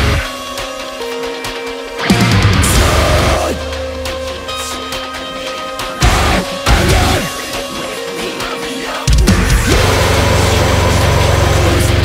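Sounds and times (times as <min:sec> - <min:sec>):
distorted guitars: 0:00.0 - 0:12.0
drums: 0:00.0 - 0:12.0
heavy metal band playing: 0:00.0 - 0:12.0.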